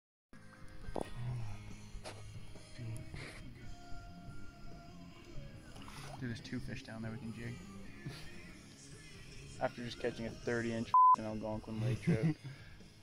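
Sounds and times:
background music with low notes: 0.4s - 13.0s.

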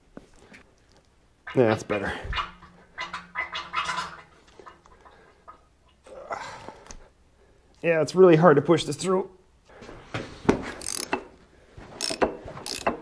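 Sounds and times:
hand pump gurgling oil: 12.0s - 13.0s.

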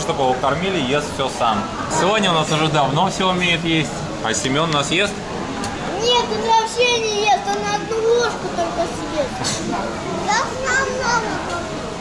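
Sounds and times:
busy restaurant background noise: 0.0s - 12.0s
young child calling: 5.9s - 9.4s, 10.3s - 11.7s.

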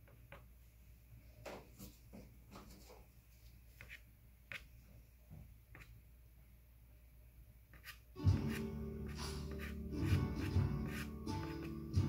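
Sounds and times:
pastel scratching on paper: 3.7s - 4.7s, 7.7s - 12.0s.

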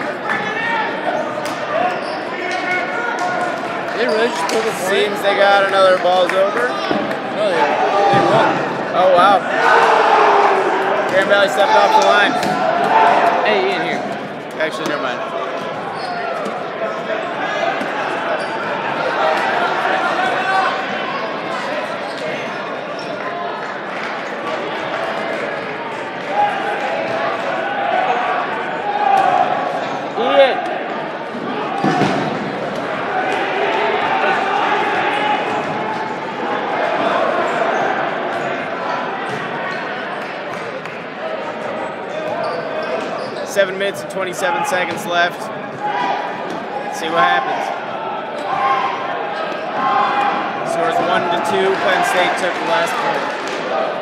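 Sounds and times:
people shouting and chatting: 0.0s - 54.0s.

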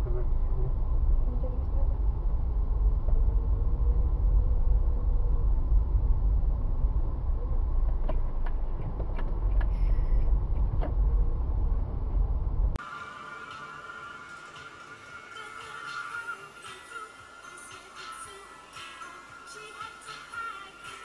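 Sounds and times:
car road and engine rumble: 0.0s - 13.9s.

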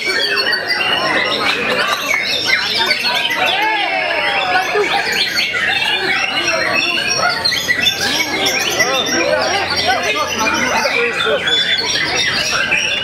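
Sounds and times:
crowd voices and calls: 0.0s - 13.0s
songbirds singing: 0.0s - 13.0s.

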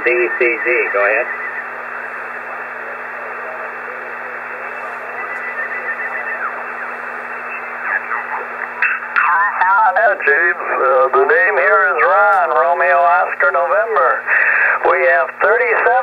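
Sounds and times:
faint sliding radio tones: 0.0s - 16.0s
radio static hiss: 0.0s - 16.0s
voice over radio: 0.0s - 16.0s.

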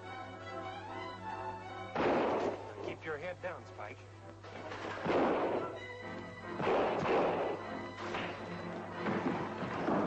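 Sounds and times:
film score music: 0.0s - 10.0s
crashing punch blows: 2.0s - 2.7s.

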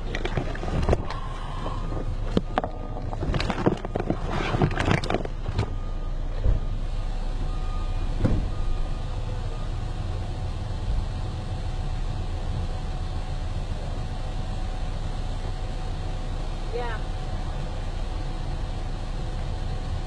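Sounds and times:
motor vehicle rumble: 0.0s - 20.0s.

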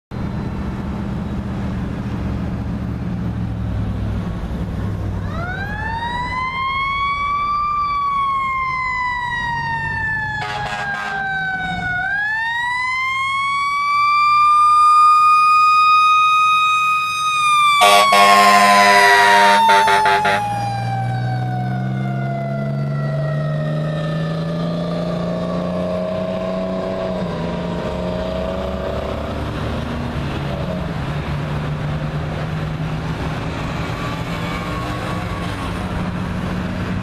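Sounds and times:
traffic noise: 0.1s - 37.0s
air horn blasts: 10.4s - 11.4s, 17.8s - 20.6s.

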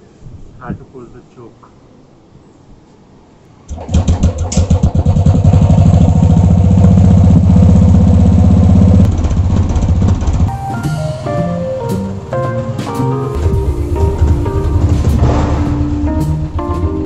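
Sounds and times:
motorcycle engine starting and idling: 3.7s - 10.7s, 13.3s - 17.0s.

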